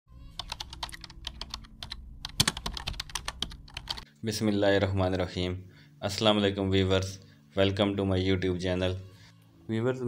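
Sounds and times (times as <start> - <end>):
keyboard typing clicks: 0.4 - 4.0.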